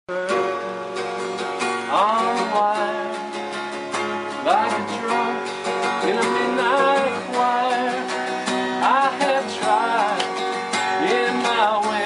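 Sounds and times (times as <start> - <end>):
acoustic guitar strumming: 0.1 - 12.0
man singing folk song: 0.1 - 12.0.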